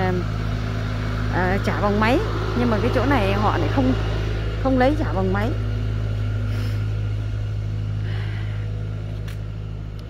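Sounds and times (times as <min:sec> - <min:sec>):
road traffic engine hum: 0:00.0 - 0:10.0.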